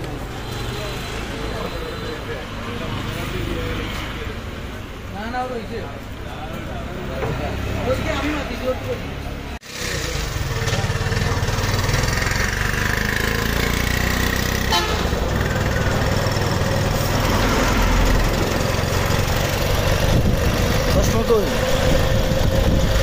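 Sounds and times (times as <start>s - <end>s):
road noise: 0.0s - 23.0s
vehicle engine rumbling: 0.0s - 23.0s
vehicle horns: 14.4s - 16.2s.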